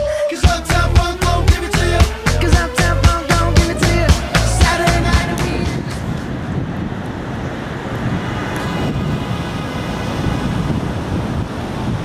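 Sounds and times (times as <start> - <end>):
traffic rumble: 0.7 - 12.0
wind on microphone: 1.0 - 12.0.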